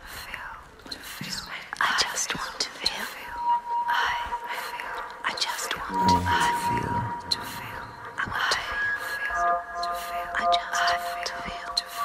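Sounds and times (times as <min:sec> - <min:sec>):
people whispering: 0:05.3 - 0:09.3
steady high tone: 0:05.8 - 0:10.6.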